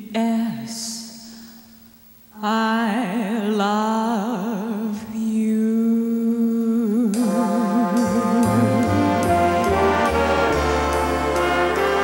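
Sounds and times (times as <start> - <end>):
woman singing a long low note: 2.4 - 11.0.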